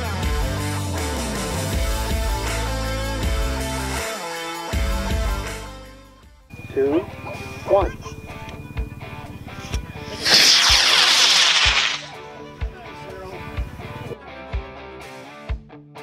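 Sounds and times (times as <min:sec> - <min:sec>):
rocket motor rushing: 0:10.0 - 0:12.2.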